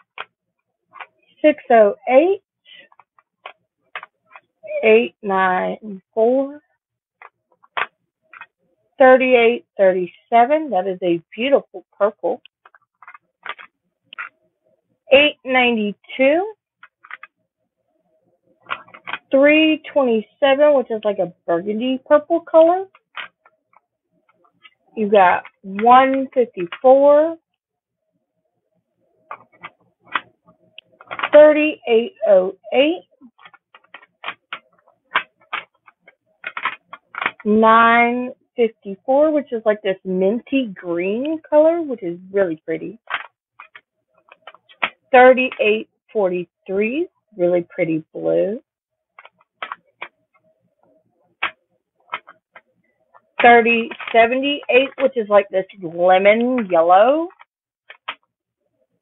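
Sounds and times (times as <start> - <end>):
plastic containers clicking: 12.7 - 14.3, 30.8 - 31.3.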